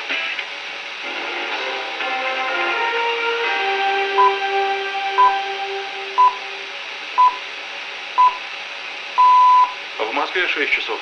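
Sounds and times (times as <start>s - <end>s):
radio background hiss: 0.0s - 2.8s, 4.6s - 11.0s
station jingle held notes: 2.0s - 7.4s
radio time signal beeps: 5.2s - 5.4s, 6.2s - 6.5s, 7.2s - 7.4s, 8.2s - 8.4s, 9.2s - 9.8s.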